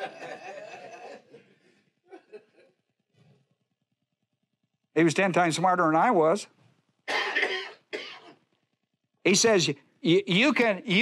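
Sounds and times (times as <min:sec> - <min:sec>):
man coughing: 0:07.1 - 0:08.4.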